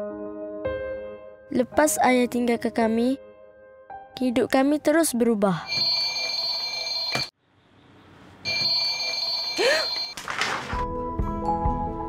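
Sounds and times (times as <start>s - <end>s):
alarm clock ringing: 5.7s - 7.3s, 8.5s - 10.1s.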